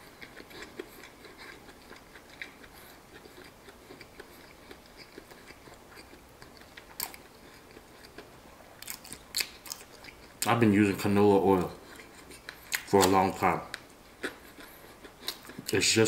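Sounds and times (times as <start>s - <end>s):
person chewing crunchy food: 0.0s - 15.8s.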